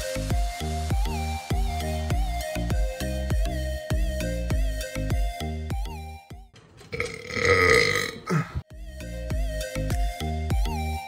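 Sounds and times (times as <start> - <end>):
electronic music with steady beat: 0.0 - 6.5
loud burp: 6.9 - 8.6.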